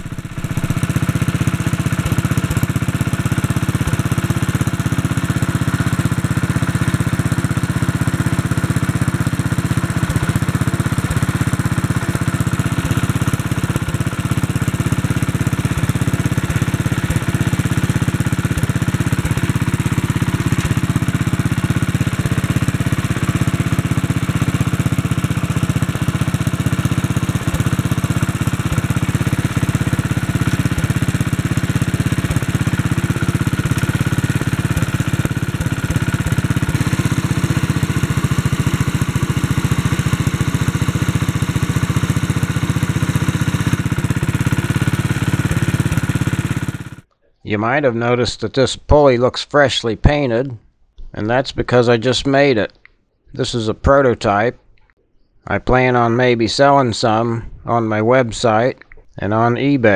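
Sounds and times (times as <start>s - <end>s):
small engine running steadily: 0.0s - 47.1s.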